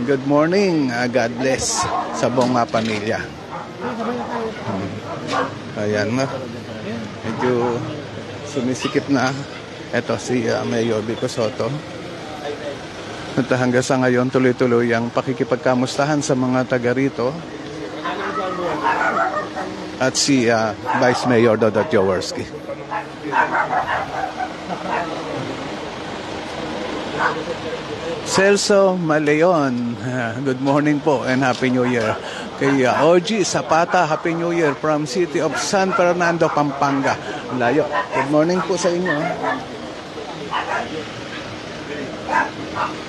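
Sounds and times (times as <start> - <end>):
people chattering: 0.0 - 43.0
people talking: 0.0 - 43.0
dog barking: 1.4 - 2.8, 3.4 - 6.5, 7.3 - 7.9, 18.0 - 19.8, 20.7 - 22.1, 22.9 - 25.2, 27.2 - 27.5, 31.7 - 39.8, 40.4 - 41.0, 42.2 - 43.0.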